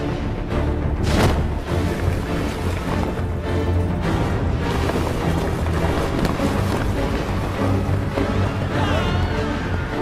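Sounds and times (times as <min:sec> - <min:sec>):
orchestral music low sustained chords: 0:00.0 - 0:10.0.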